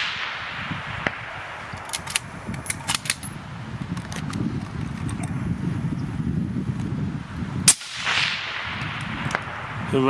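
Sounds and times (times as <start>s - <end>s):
suppressed rifle shot with echo: 0.0s - 2.2s, 7.7s - 9.8s.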